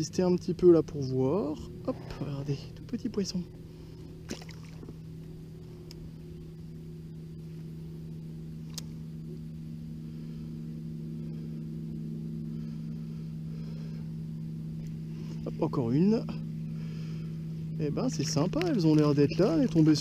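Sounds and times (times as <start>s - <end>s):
low engine hum: 0.0s - 20.0s
faint click: 8.7s - 8.9s.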